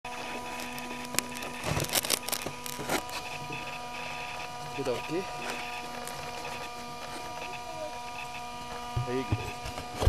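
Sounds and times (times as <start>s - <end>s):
steady electrical hum: 0.1s - 10.0s.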